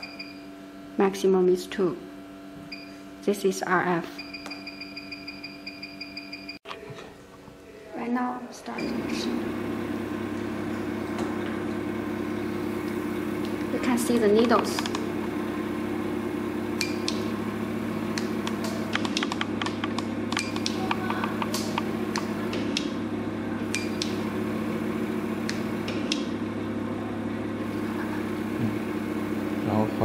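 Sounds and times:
low machine hum: 0:00.0 - 0:30.0
sharp irregular clicks: 0:14.4 - 0:15.0, 0:18.2 - 0:22.9.

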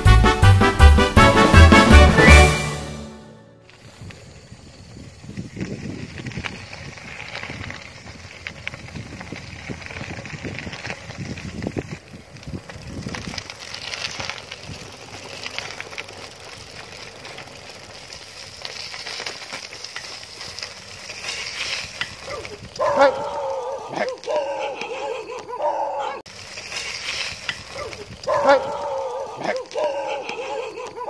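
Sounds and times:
bicycle tyres crunching gravel: 0:03.4 - 0:31.0.

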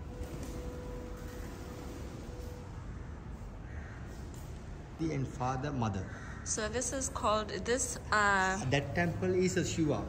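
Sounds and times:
crows cawing: 0:02.9 - 0:04.7, 0:05.9 - 0:07.0.

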